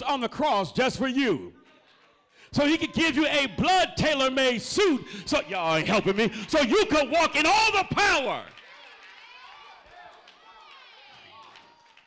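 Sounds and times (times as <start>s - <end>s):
person preaching: 0.0s - 1.6s, 2.4s - 8.5s.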